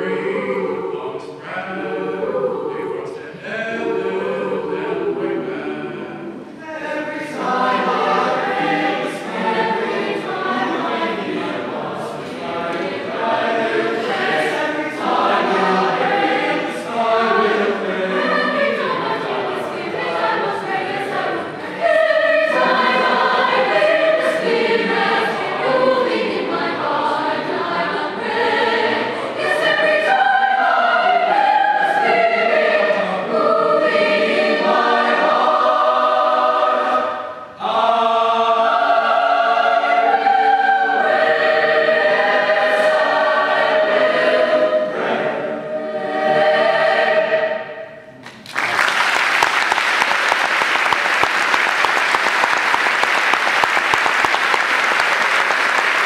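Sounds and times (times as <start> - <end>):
mixed choir singing: 0.0 - 48.8
applause: 48.2 - 56.0.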